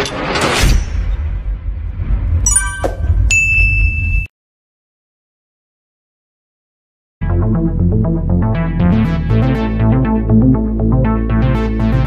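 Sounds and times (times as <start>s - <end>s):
high ringing tone: 2.5s - 4.3s
metallic ding: 2.5s - 4.3s.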